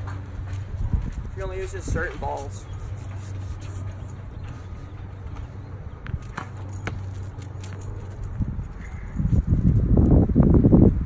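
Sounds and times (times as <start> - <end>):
ball bouncing on concrete: 5.3 - 8.2.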